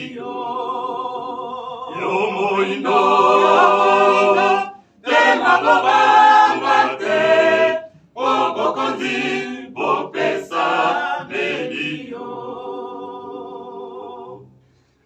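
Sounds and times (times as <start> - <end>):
group singing unaccompanied: 0.0 - 14.5.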